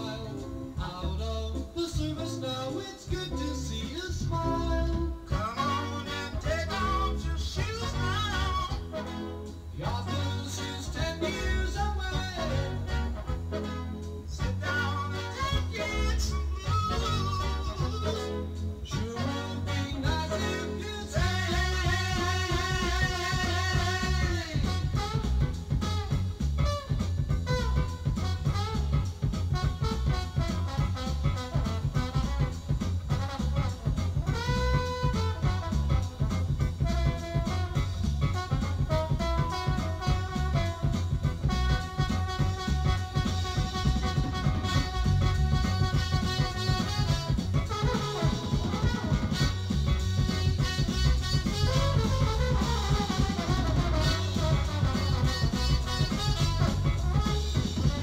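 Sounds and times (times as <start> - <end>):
person singing: 0.0 - 13.2, 14.3 - 25.4, 47.8 - 58.0
horn section long chords: 0.0 - 58.0
jazz-rock band playing: 0.0 - 58.0.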